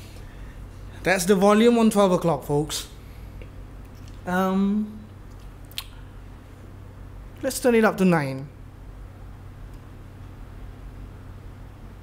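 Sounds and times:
guitar amp electrical hum: 0:00.0 - 0:12.0.

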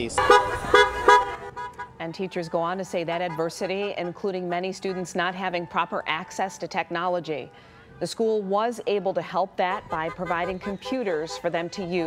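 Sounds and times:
car horn honking: 0:00.0 - 0:06.4, 0:09.7 - 0:12.0.

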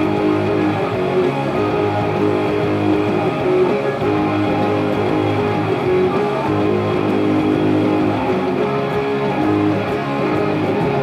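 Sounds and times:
electric guitar chords strummed: 0:00.0 - 0:11.0.

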